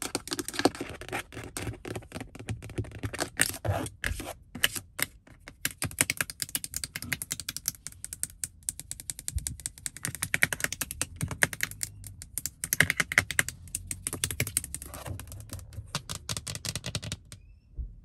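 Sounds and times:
fingernails tapping on plastic: 5.0 - 17.4.

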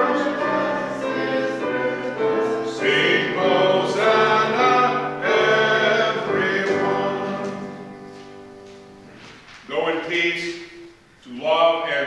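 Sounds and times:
choir singing a hymn: 0.0 - 8.4.

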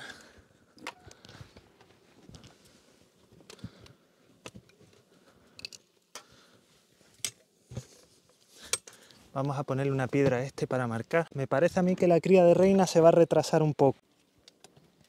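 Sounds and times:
faint handling rustle: 1.1 - 10.1.

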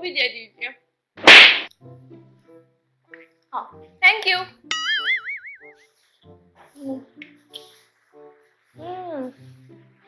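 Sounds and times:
quiet background music: 0.0 - 10.0
cartoon boing sound effect: 4.7 - 5.8.

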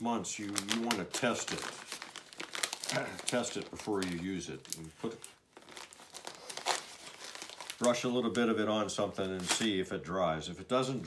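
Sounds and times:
plastic bag crinkling: 0.0 - 9.8.

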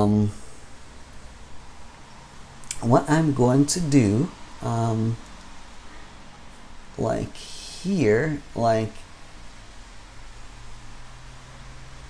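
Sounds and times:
faint low hum: 0.0 - 12.0
steady low hiss: 0.0 - 12.0.

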